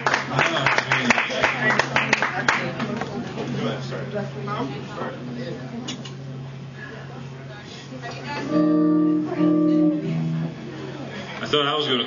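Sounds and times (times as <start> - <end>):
electric guitar chords: 8.3 - 11.1.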